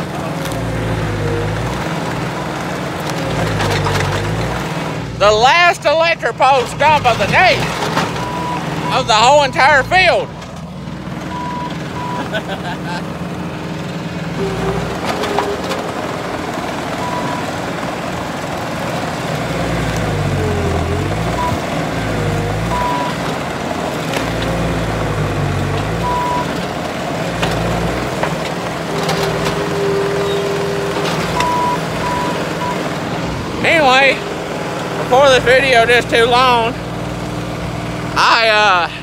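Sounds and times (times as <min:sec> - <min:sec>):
diesel engine under load: 0:00.0 - 0:39.0.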